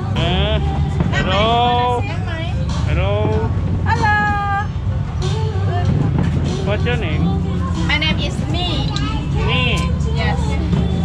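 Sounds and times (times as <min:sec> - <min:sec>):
people's voices: 0:00.0 - 0:11.0
steady low rumble: 0:00.0 - 0:11.0.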